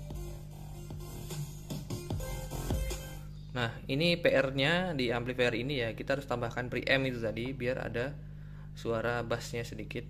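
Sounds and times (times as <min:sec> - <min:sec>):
music with percussive hits: 0:00.0 - 0:03.2
amplifier hum: 0:00.0 - 0:10.0.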